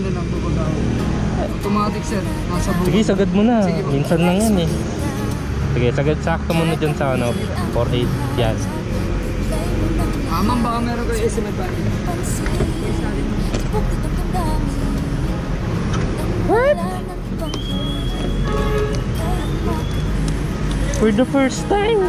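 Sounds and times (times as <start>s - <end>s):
background music: 0.0s - 22.0s
voices: 0.0s - 22.0s.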